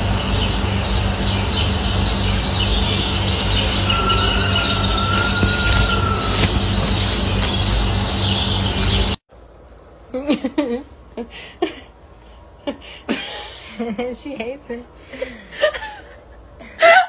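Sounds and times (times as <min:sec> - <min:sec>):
birds chirping: 0:00.0 - 0:09.2
steady low hum: 0:00.0 - 0:17.0.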